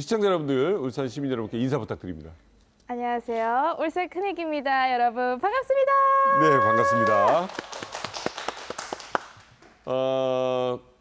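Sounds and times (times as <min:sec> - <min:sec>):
man's voice holding ah: 0:06.3 - 0:07.5
hand clapping: 0:06.6 - 0:09.8.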